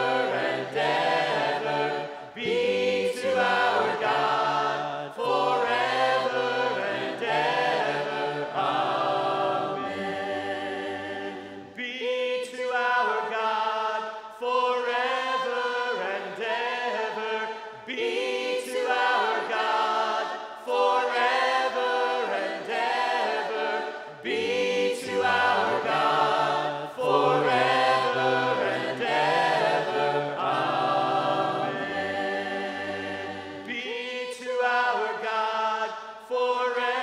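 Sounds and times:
choir singing in harmony: 0.0 - 37.0.

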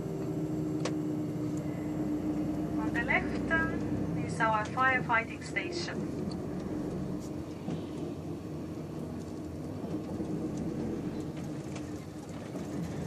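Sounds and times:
low constant hum: 0.0 - 13.0
vehicle engine drone and road noise: 0.0 - 13.0.

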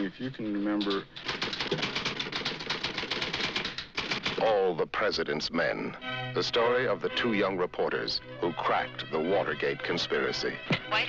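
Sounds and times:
typewriter keys clicking: 0.8 - 4.5.

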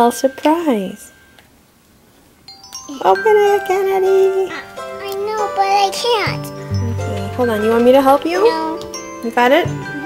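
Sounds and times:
doorbell chime: 0.0 - 1.4, 2.5 - 10.0.

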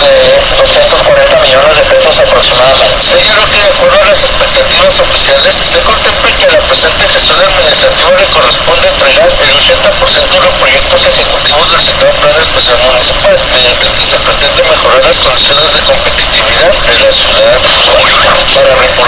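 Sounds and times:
radio static: 0.0 - 19.0
thin hissy radio voice: 0.0 - 19.0.

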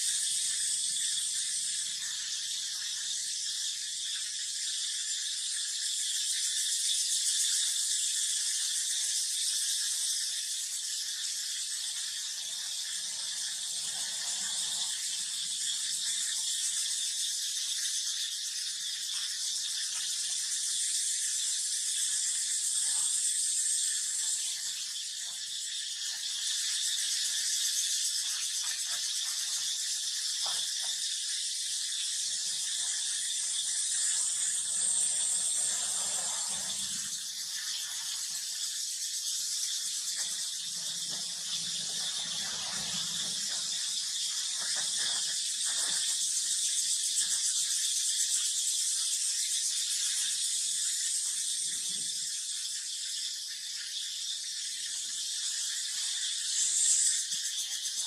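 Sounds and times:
high-pitched insect chorus: 0.0 - 58.0.

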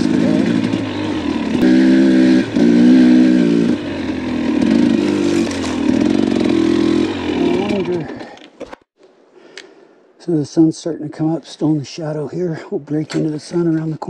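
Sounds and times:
dirt bike engine running: 0.0 - 8.4.

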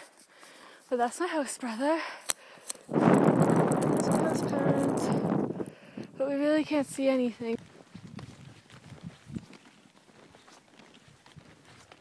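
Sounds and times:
snowshoe footsteps crunching in snow: 6.6 - 12.0.

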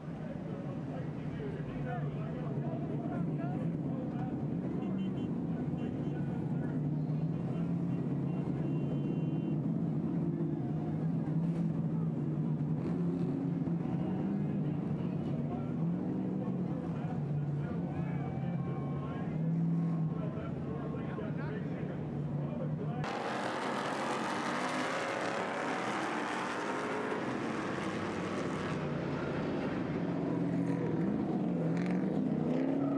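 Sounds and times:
vehicle engines idling: 0.0 - 32.9.

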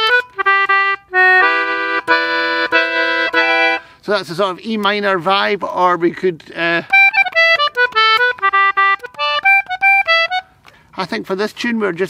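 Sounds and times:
concertina melody: 0.0 - 3.9, 6.8 - 10.6.

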